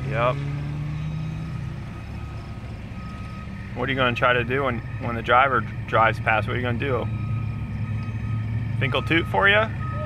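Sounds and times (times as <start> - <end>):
distant diesel engine rumble: 0.0 - 10.0.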